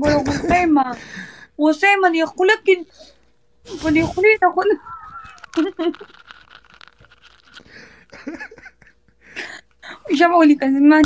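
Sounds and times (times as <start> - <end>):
high wavering squeal of laughter: 4.7 - 6.3
people laughing hard: 8.1 - 9.3.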